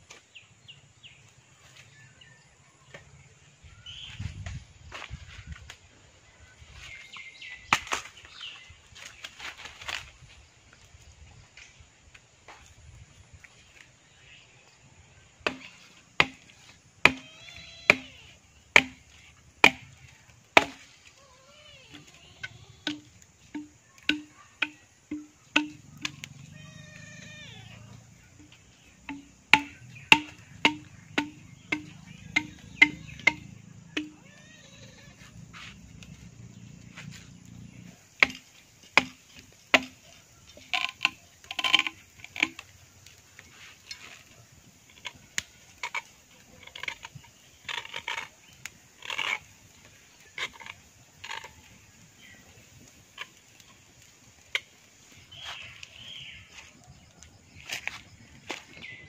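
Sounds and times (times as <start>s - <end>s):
machete chopping bamboo: 7.6s - 8.4s, 15.4s - 21.0s, 22.8s - 26.4s, 28.4s - 34.2s, 38.2s - 42.7s.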